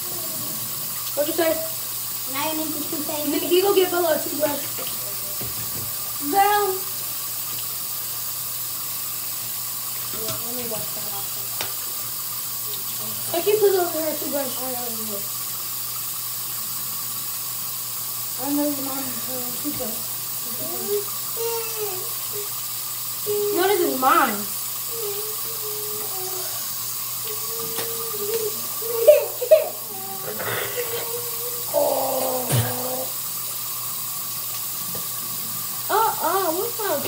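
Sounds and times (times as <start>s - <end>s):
tap running into a sink: 2.8s - 7.9s, 8.9s - 14.0s, 18.4s - 20.0s, 24.9s - 30.0s, 32.2s - 37.0s.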